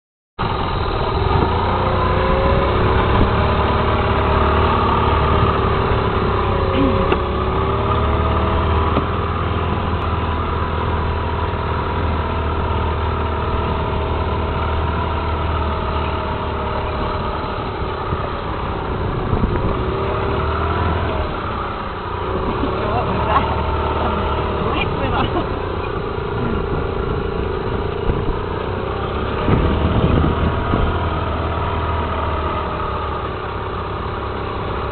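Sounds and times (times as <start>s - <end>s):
vehicle engine rumbling: 0.4s - 34.9s.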